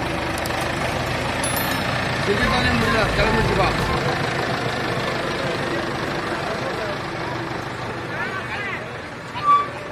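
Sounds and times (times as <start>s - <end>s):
tractor diesel engine running: 0.0s - 9.9s.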